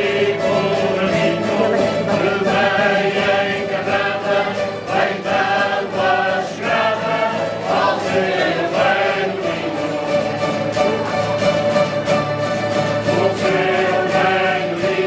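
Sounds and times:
men singing in chorus: 0.0 - 11.1, 12.9 - 15.0
strummed guitars: 0.0 - 15.0.

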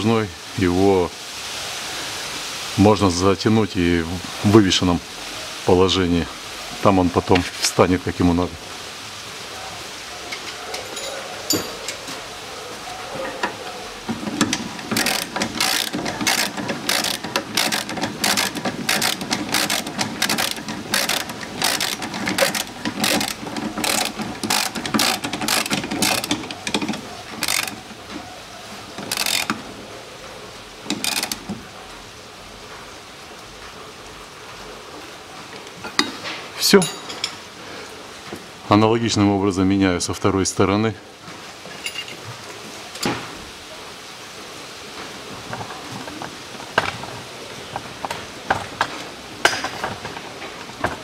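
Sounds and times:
ratchet wrench clicking: 14.4 - 27.8, 29.0 - 29.6, 30.9 - 31.4.

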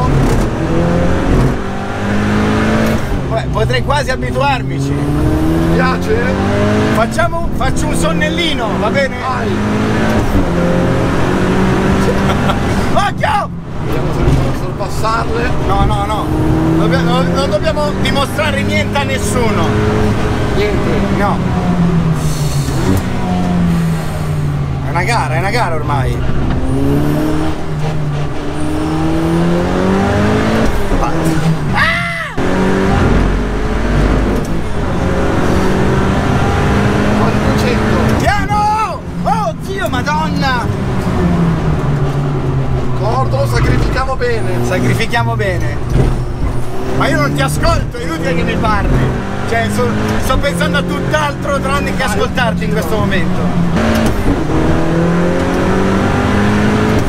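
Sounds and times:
passenger laughing and shouting: 0.0 - 1.7, 3.1 - 23.9, 24.7 - 54.7
car engine accelerating: 0.0 - 57.0.

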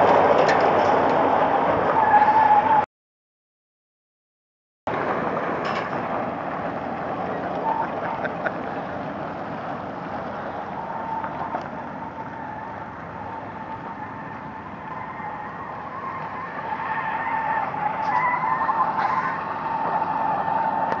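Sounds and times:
diesel engines under heavy load: 0.0 - 2.9, 4.9 - 21.0
wheels spinning on gravel: 4.9 - 21.0.

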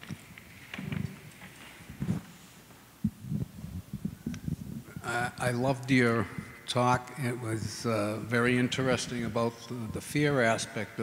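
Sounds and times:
microphone handling bumps and rustles: 0.0 - 5.0.

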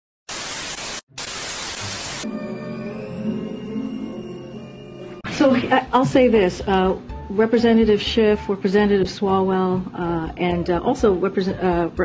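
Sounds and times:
television static hiss: 0.3 - 2.2.

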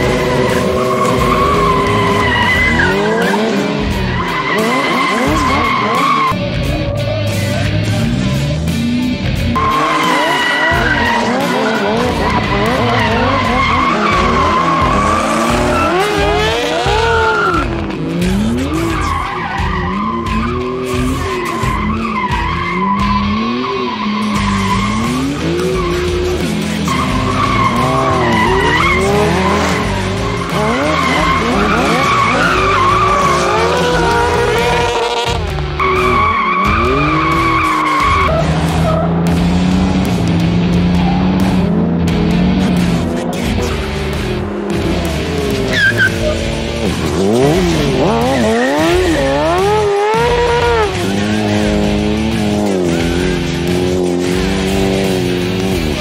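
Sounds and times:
tyre squeals: 0.0 - 6.4, 9.6 - 17.9, 18.5 - 39.2, 45.7 - 54.0
engines revving: 0.0 - 56.0.

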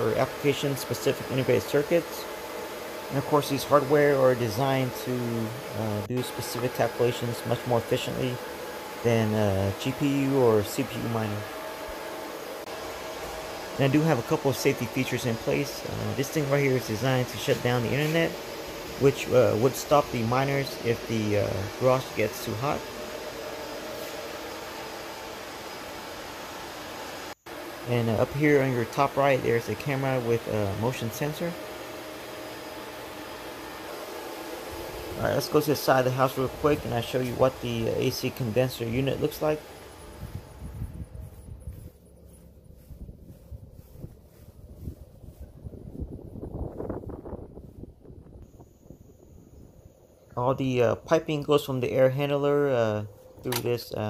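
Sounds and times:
cooling fans whirring: 0.0 - 54.0
faint hum tones: 0.0 - 54.0
low rumbling outdoor noise: 0.0 - 54.0
footsteps: 40.2 - 46.2.

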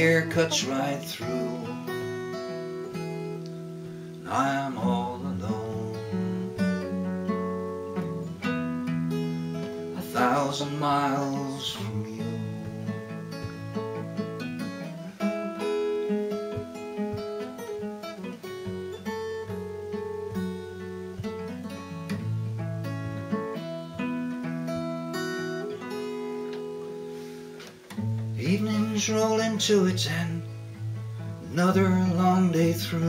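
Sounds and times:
fingerpicked acoustic guitar: 0.0 - 33.0.

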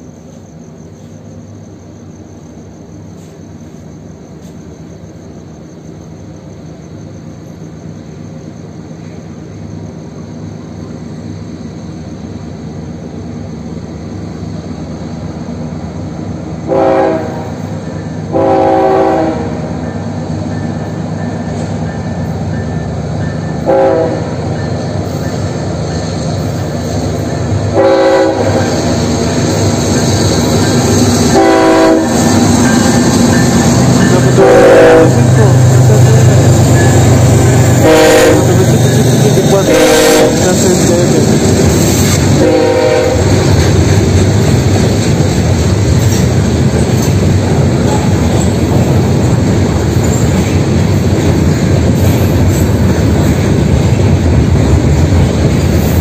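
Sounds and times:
locomotive air horn blasts: 16.7 - 17.6, 18.3 - 19.6, 23.6 - 24.4, 27.7 - 28.6, 31.3 - 32.2, 34.3 - 35.3, 37.8 - 38.6, 39.6 - 40.4, 42.4 - 43.3
heavy engine rumble: 28.6 - 56.0.

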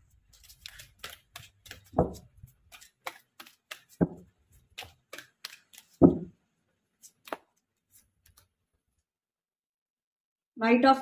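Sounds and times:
cards shuffling: 0.1 - 6.2, 7.0 - 8.5.

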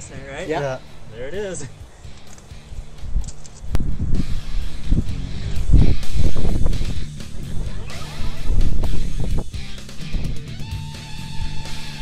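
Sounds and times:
sharp click: 2.1 - 2.5, 3.2 - 3.9
wind buffeting microphone: 2.6 - 10.6.

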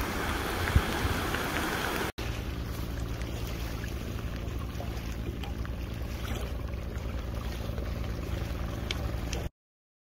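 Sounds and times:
wind noise on microphone: 0.0 - 2.1
outboard motor idling: 0.0 - 9.5.

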